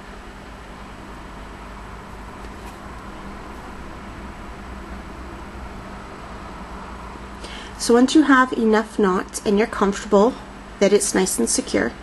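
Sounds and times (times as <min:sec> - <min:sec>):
low constant hum: 0:00.0 - 0:12.0.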